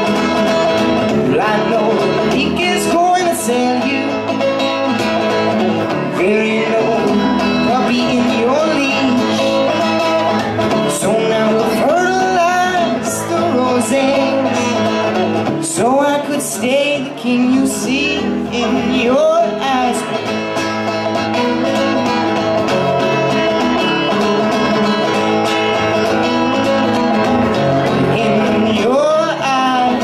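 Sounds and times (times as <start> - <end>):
man singing: 0.0 - 22.1, 25.9 - 30.0
acoustic guitar strumming: 0.0 - 30.0.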